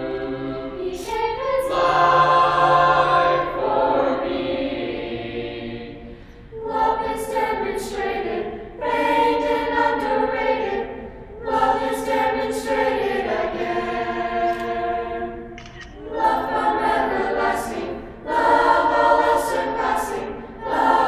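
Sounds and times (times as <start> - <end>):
youth choir singing in harmony: 0.0 - 21.0.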